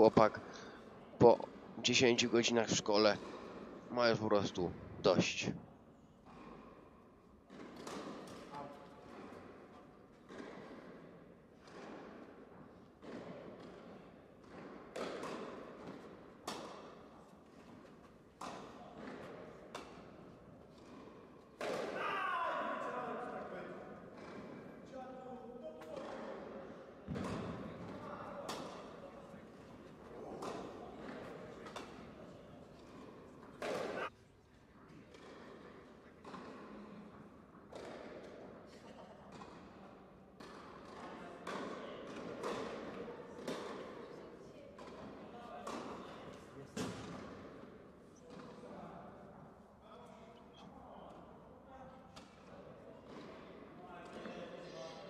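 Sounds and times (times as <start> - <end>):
tennis ball bouncing on court: 7.5 - 8.5, 13.0 - 17.0, 18.4 - 22.0, 27.1 - 28.8, 30.4 - 32.1, 32.8 - 34.1, 37.6 - 38.5, 40.4 - 43.9
tennis ball struck with rackets: 32.8 - 34.1.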